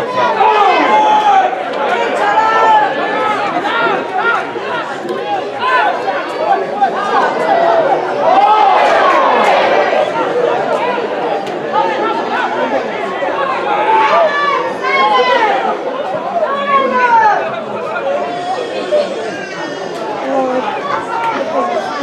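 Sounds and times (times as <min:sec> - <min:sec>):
players shouting: 0:00.0 - 0:22.0
spectators talking: 0:00.0 - 0:22.0.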